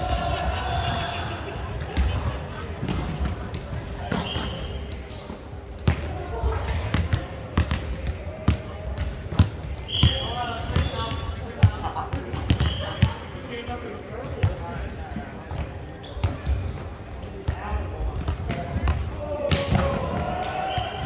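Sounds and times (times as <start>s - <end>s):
volleyballs hit and bouncing: 0.9s - 13.4s, 14.1s - 21.0s.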